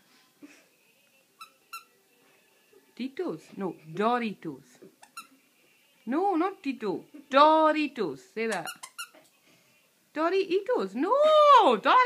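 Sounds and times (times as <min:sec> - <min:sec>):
puppet squeaker squeaks: 0:05.0 - 0:05.3, 0:08.5 - 0:09.2.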